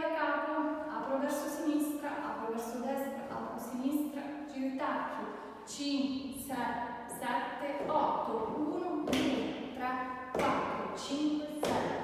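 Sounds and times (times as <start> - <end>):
woman speaking and counting: 0.0 - 12.0.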